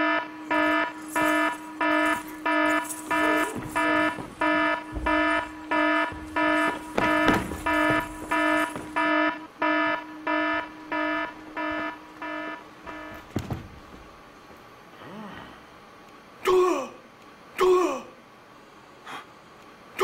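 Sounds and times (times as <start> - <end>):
electronic alarm beeping: 0.0 - 13.2.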